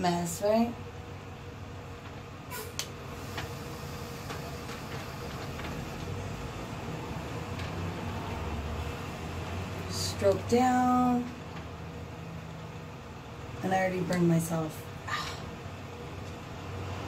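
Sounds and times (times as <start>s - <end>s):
fan running with low hum: 0.0s - 17.0s.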